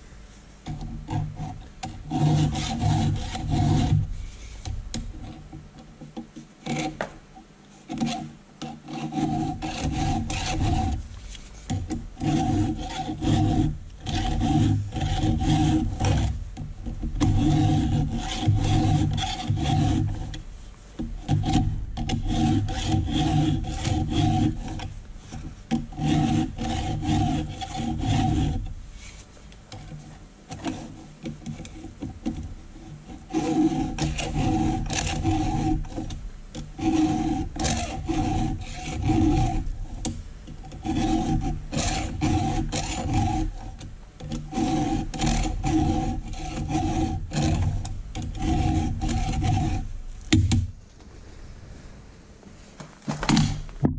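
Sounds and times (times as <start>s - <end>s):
file rasping on chainsaw chain: 1.1s - 4.1s, 7.9s - 11.0s, 11.7s - 20.4s, 21.2s - 28.7s, 30.5s - 49.9s.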